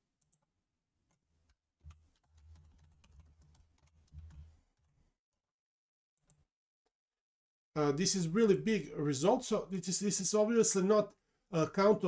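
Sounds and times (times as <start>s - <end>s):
computer keyboard typing: 1.8s - 4.9s.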